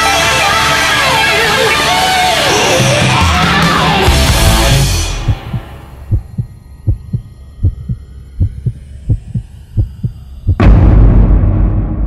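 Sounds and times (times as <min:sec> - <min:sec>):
high sweeping tones: 0:04.5 - 0:10.6
faint hum: 0:05.1 - 0:10.6
heartbeat thuds: 0:05.2 - 0:10.7
loud boom: 0:10.6 - 0:12.0.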